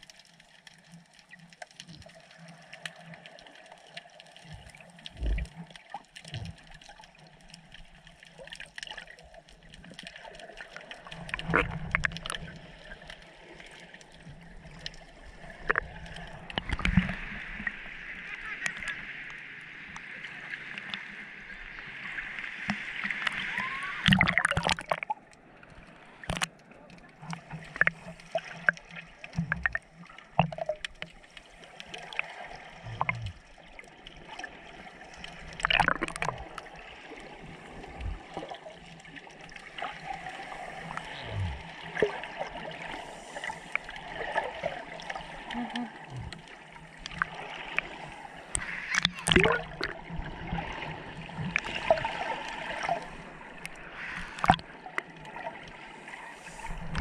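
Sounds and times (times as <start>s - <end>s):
water sloshing and gurgling: 0.0s - 57.0s
water splashing: 0.0s - 57.0s.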